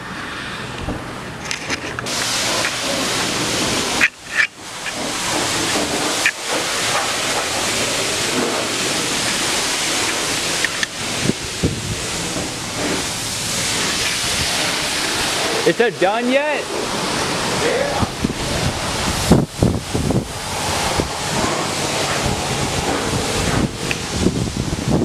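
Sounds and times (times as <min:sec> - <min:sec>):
pressure washer spraying water: 0:00.0 - 0:25.0.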